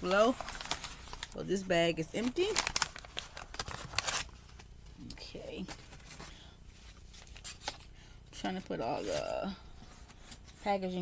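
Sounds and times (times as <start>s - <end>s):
packaging bag crinkling: 0.0s - 1.4s, 2.1s - 4.4s.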